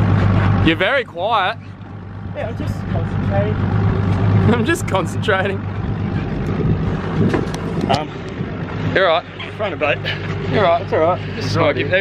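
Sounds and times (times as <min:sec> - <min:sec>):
boat engine humming: 0:00.0 - 0:12.0
wind noise on microphone: 0:05.8 - 0:08.8.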